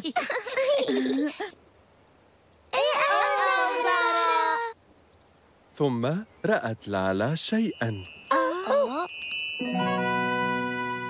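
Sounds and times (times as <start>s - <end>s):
high childlike voices singing: 2.8s - 4.8s.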